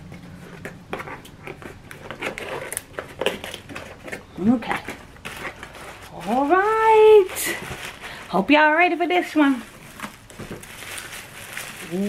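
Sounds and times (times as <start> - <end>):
cardboard box rustling and scraping: 0.2 - 8.7.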